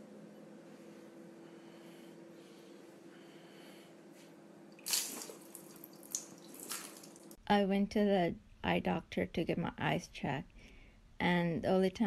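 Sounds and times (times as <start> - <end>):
milk splashing on hard floor: 4.8 - 7.4.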